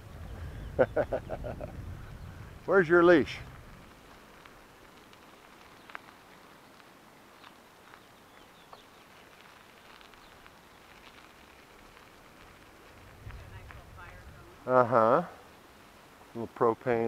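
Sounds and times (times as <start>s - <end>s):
bicycle rolling over gravel: 0.0s - 17.0s
small clicks and ticks: 2.6s - 14.6s.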